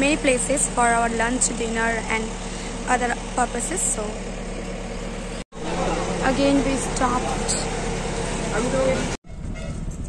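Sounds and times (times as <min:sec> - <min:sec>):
voices on busy street: 0:00.0 - 0:09.2
traffic noise: 0:00.0 - 0:10.0
vehicle engine idling: 0:00.0 - 0:10.0.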